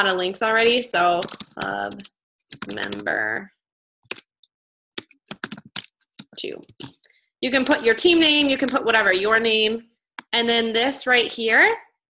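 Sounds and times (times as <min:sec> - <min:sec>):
typing on computer keyboard: 0:01.1 - 0:03.2, 0:05.0 - 0:06.9.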